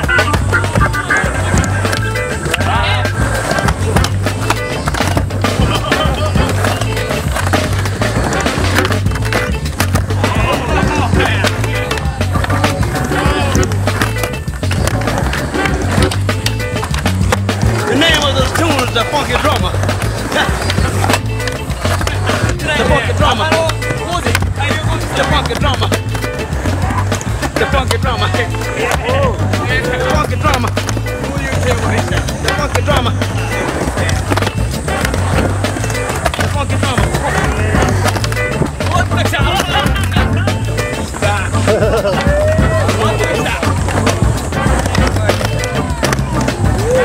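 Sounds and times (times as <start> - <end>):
music with pulsing bass beat: 0.0 - 47.0
skateboard wheels rolling on concrete: 0.0 - 47.0.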